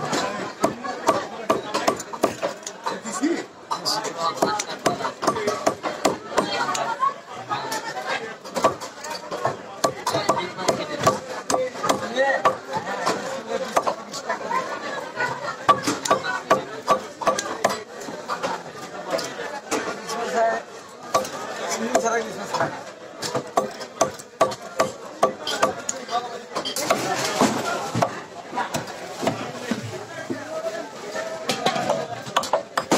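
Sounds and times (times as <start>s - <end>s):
chatter of voices: 0.0s - 32.9s.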